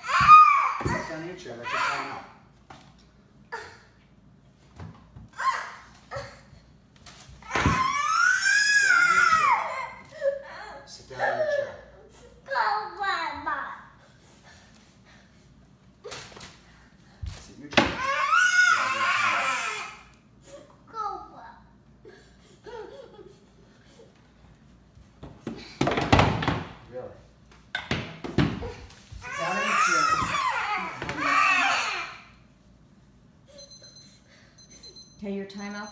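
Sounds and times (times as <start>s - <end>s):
toddler screaming: 0.0s - 2.3s, 5.4s - 6.3s, 7.4s - 10.2s, 17.9s - 20.1s, 29.2s - 32.3s.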